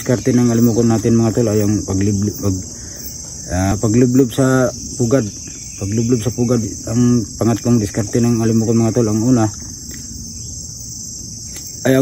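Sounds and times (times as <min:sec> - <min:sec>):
man talking: 0:00.0 - 0:02.8, 0:03.5 - 0:09.6, 0:11.8 - 0:12.0
insect chorus drone: 0:00.0 - 0:12.0.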